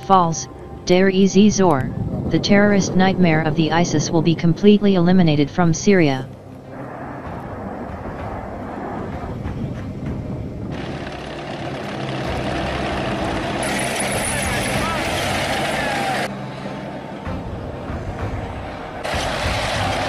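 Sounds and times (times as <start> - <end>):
tank engine running: 10.7 - 14.0.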